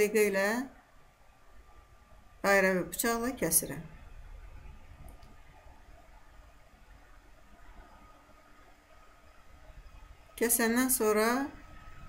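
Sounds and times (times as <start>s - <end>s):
faint steady hiss and hum: 0.0s - 12.0s.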